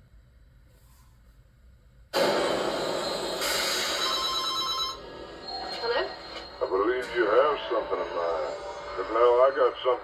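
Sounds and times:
telephone bell ringing: 3.8s - 6.9s.

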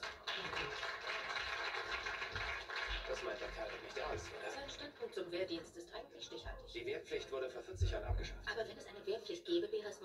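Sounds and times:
audience applauding on television: 0.0s - 5.3s.

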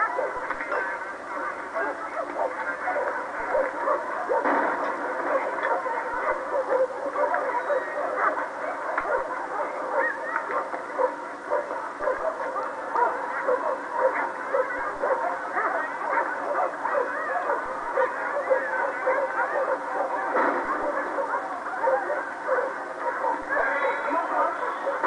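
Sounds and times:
continuous din: 0.0s - 25.0s
dogs barking: 0.0s - 25.0s.

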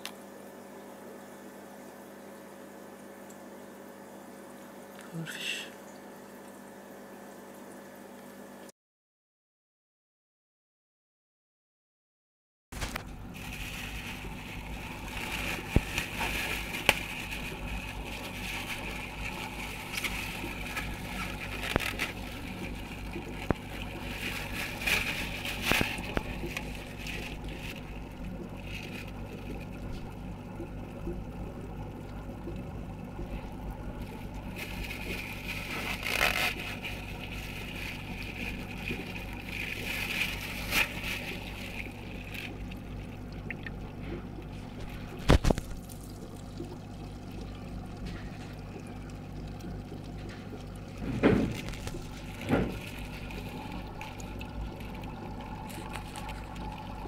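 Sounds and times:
trickling water: 0.0s - 8.5s, 12.8s - 57.0s
aquarium hum: 0.0s - 8.7s, 12.8s - 57.0s
scrapes and knocks on tank: 51.0s - 51.8s.

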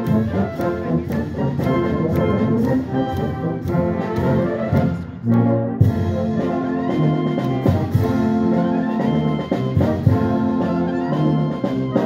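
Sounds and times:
brass band playing marches: 0.0s - 12.0s.

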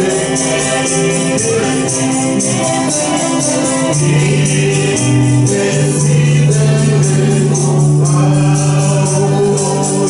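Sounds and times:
group singing gospel song: 0.0s - 10.0s
tambourine beat: 0.0s - 10.0s.

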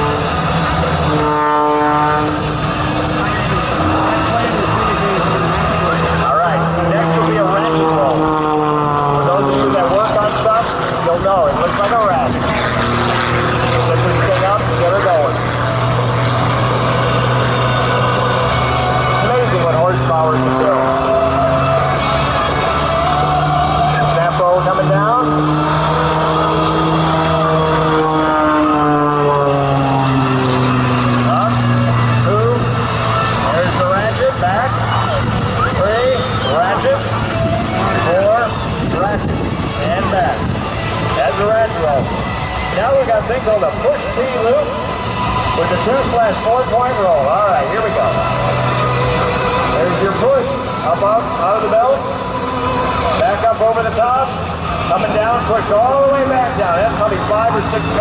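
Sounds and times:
propeller plane engine droning: 0.0s - 58.0s.

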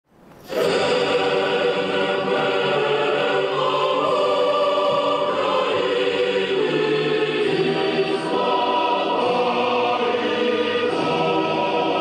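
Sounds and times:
choir singing held notes: 0.4s - 12.0s.

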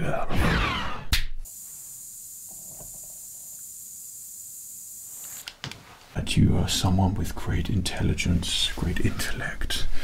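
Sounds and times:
mist sprayer hissing: 1.5s - 5.6s.

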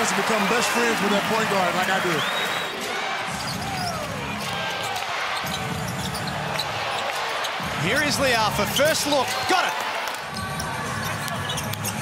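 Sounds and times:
crowd noise: 0.0s - 12.0s
sneaker squeaks on court: 4.8s - 7.6s, 10.3s - 12.0s.

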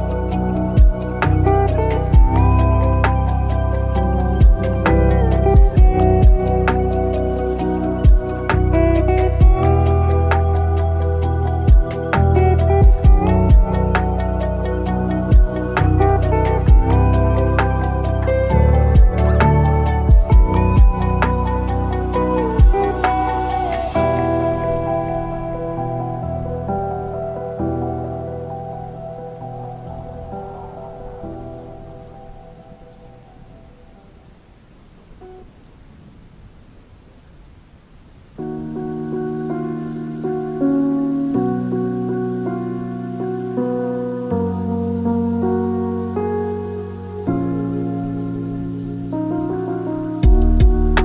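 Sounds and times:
lofi music chords: 0.0s - 34.4s, 38.4s - 51.0s
soft rain: 0.0s - 51.0s
drum beat: 5.6s - 6.4s, 9.4s - 9.7s, 12.8s - 13.7s, 15.3s - 15.5s, 16.7s - 17.0s, 19.0s - 19.2s, 20.1s - 21.0s, 22.6s - 22.8s, 50.2s - 51.0s.

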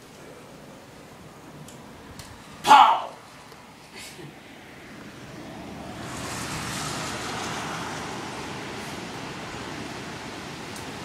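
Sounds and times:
rain: 4.3s - 11.0s
hurricane wind: 4.4s - 11.0s.

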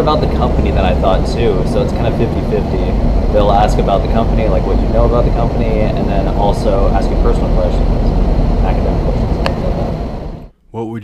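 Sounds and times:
low rumble: 0.0s - 10.5s.

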